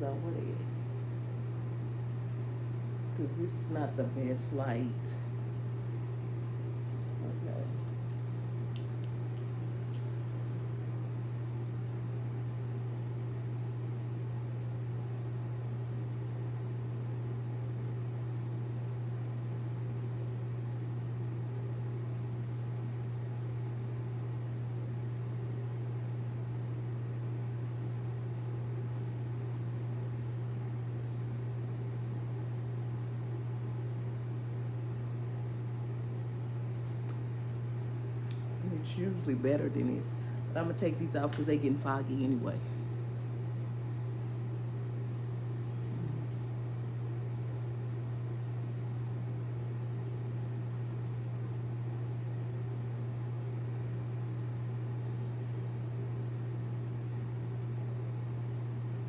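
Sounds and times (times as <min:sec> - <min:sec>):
appliance electrical hum: 0:00.0 - 0:59.0.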